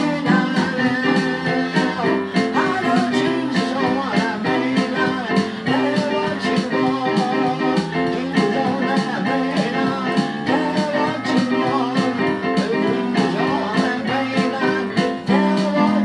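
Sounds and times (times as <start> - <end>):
electronic keyboard chords: 0.0 - 16.0
man singing gospel song: 0.0 - 16.0.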